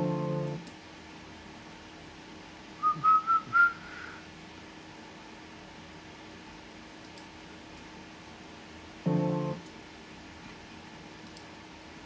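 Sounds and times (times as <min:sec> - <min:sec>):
person whistling short notes: 0:02.8 - 0:04.2.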